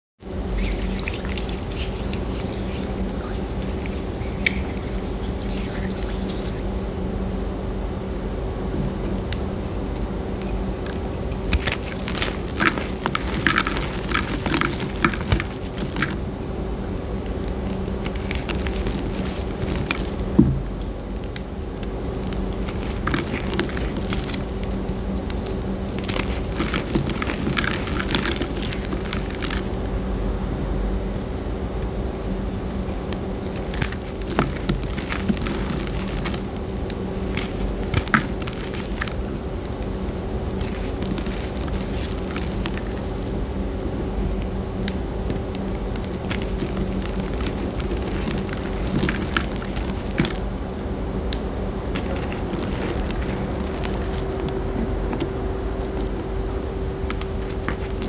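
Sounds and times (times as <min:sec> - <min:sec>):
steady low hum: 0:00.2 - 0:58.0
hands crumbling chalk: 0:00.6 - 0:06.7, 0:09.6 - 0:16.2, 0:17.2 - 0:29.7, 0:32.2 - 0:43.4, 0:44.8 - 0:50.5, 0:51.4 - 0:58.0.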